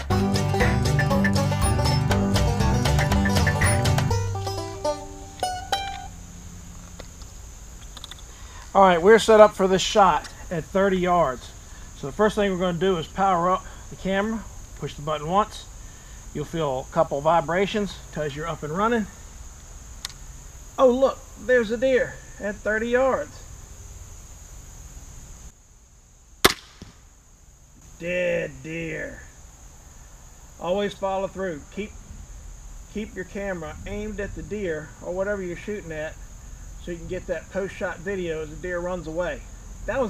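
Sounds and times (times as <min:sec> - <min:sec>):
insects chirring: 0:00.0 - 0:40.0
faint click: 0:20.0 - 0:20.2
bolt striking target: 0:26.4 - 0:27.0
crossbow firing crack: 0:26.4 - 0:27.2.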